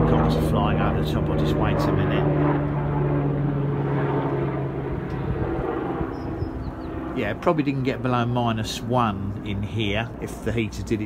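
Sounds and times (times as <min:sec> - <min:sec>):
helicopter engine and rotor drone: 0:00.0 - 0:11.0.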